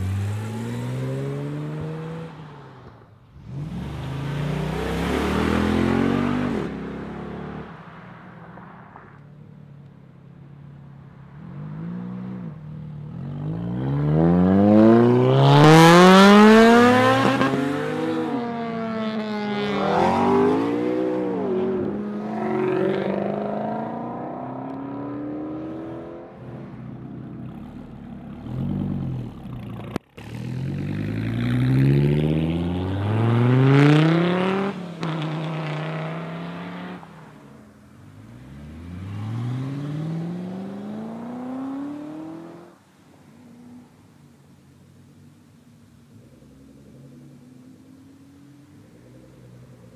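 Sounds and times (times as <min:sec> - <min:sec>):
sports cars accelerating hard: 0:00.0 - 0:08.1, 0:11.3 - 0:42.9.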